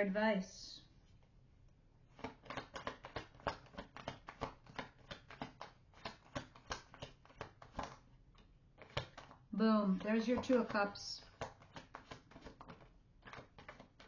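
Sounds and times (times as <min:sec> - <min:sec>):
cards shuffled by hand: 0:02.1 - 0:14.0.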